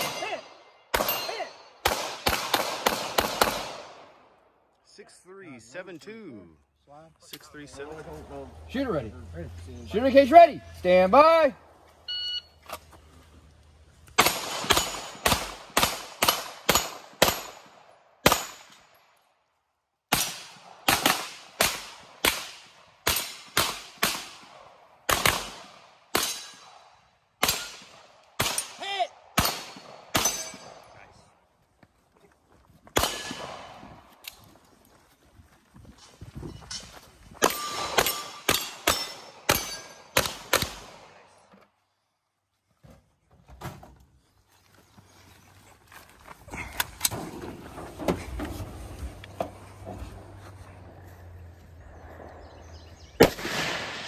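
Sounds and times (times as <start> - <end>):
shot timer beep: 12.1 - 12.6.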